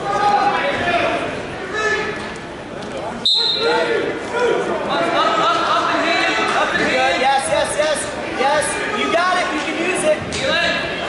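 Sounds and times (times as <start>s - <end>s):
shouting voices in echoing gym: 0.0s - 2.6s, 3.2s - 11.0s
referee's whistle blast: 3.2s - 3.7s.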